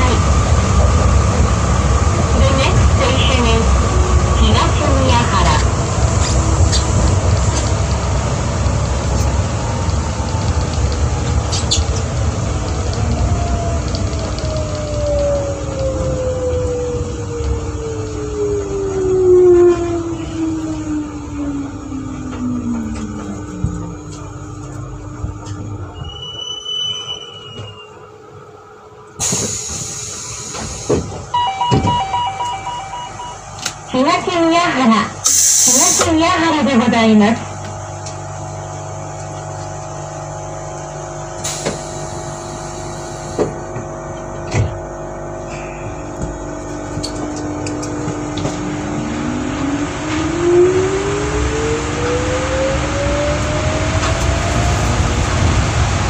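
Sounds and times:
train running rumble: 0.0 - 56.0
air hiss burst: 29.2 - 31.1, 35.2 - 36.1, 41.4 - 43.4
train motor whine falling: 29.2 - 33.9, 41.3 - 44.8, 45.4 - 56.0
chime of steady tones: 31.4 - 33.6.

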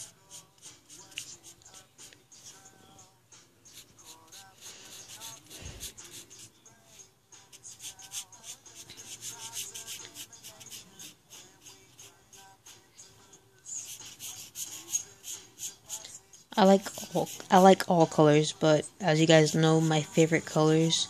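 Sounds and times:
marker rubbing on paper: 0.0 - 2.6, 3.7 - 6.5, 7.5 - 13.1, 13.7 - 16.0, 16.6 - 18.0, 19.0 - 21.0
faint background music: 0.0 - 21.0.

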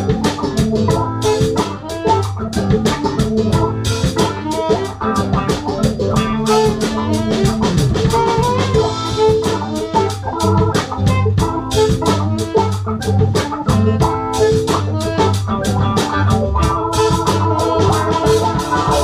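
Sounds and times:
bass notes: 0.0 - 19.0
drum kit groove: 0.0 - 19.0
electric guitar: 0.0 - 19.0
funk band playing: 0.0 - 19.0
organ-style keyboard: 0.0 - 19.0.

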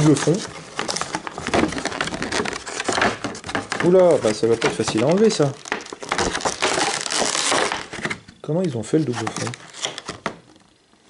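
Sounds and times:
plastic blister crinkling: 0.0 - 10.7.

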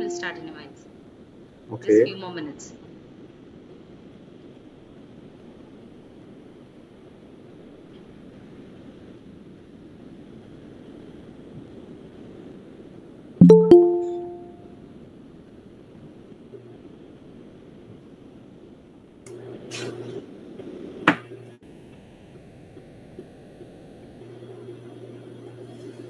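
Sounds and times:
two-note electronic chime: 13.4 - 14.6.

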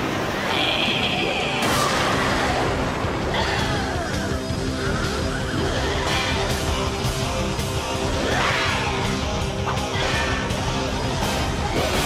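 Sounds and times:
action music: 0.0 - 12.0.

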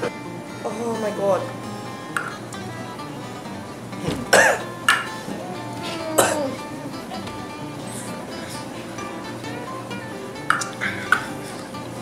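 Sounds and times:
background music: 0.0 - 12.0
person coughing harshly: 4.1 - 4.7, 5.8 - 6.6.

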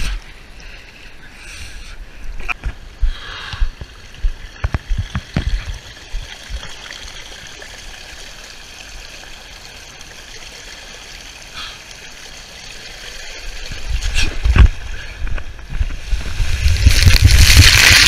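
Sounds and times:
water rushing down slide: 15.8 - 18.0.

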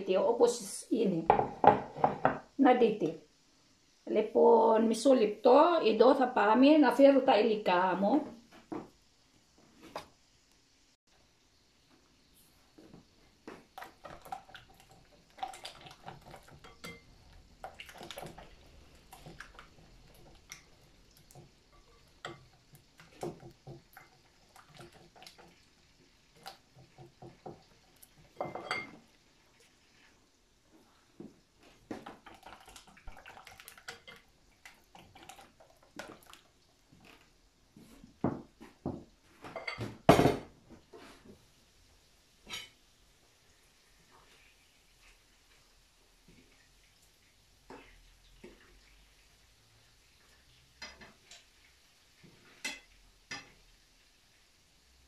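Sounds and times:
dishes clattering: 1.3 - 2.4, 14.0 - 18.5, 28.3 - 29.0, 39.5 - 40.5
dishes and utensils clinking: 14.0 - 17.3, 28.3 - 29.1, 39.4 - 40.4, 52.5 - 53.6.

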